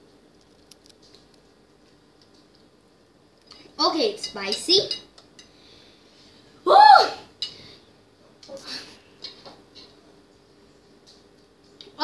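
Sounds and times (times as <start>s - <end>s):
short high vocal cry: 6.7s - 7.3s.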